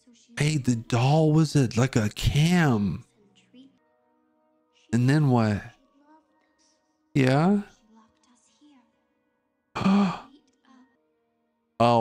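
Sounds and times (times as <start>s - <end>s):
breathy sigh: 9.8s - 10.3s
faint voice: 9.8s - 10.9s.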